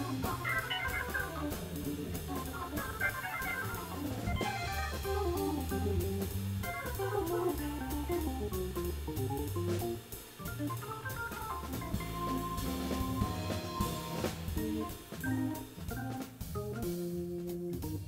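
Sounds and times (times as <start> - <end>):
bass line: 0.0 - 18.0
drum kit and cymbals: 0.0 - 18.0
organ melody: 0.0 - 18.0.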